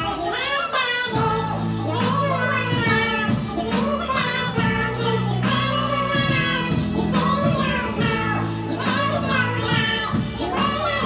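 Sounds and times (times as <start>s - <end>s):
man singing in a high voice: 0.0s - 11.0s.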